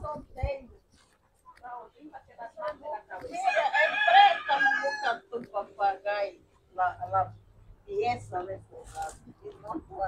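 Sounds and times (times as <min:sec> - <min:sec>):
rooster crowing: 0:03.4 - 0:05.2.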